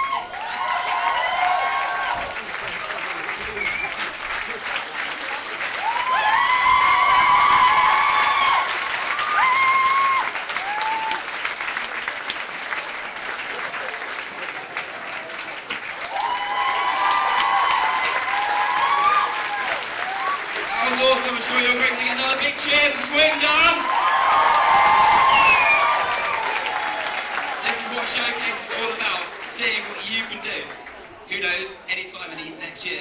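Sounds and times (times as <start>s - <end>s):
high-pitched whoops and cheers: 0.0s - 2.4s, 5.8s - 11.2s, 16.0s - 20.9s, 23.6s - 27.6s
audience clapping: 0.0s - 31.9s.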